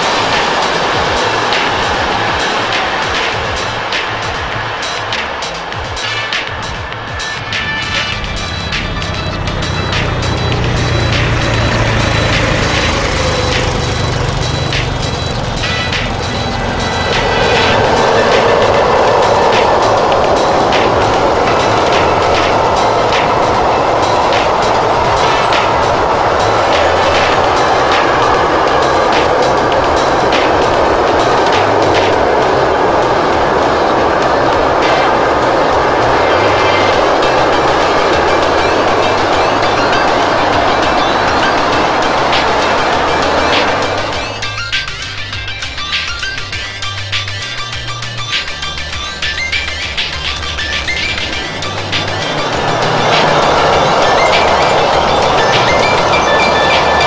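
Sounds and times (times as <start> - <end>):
freight train passing: 0.0 - 57.0
music: 0.0 - 57.0
wheels clicking over rail joints: 0.0 - 57.0.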